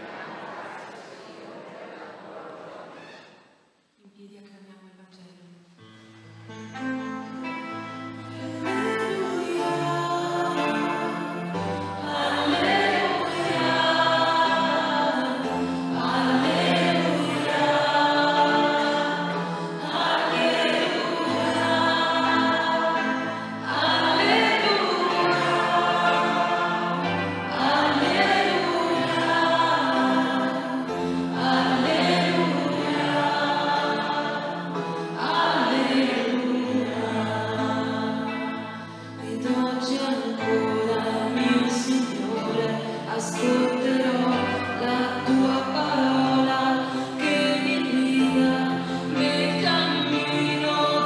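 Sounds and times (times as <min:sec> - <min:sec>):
choir singing: 0:00.0 - 0:03.0, 0:08.3 - 0:51.0.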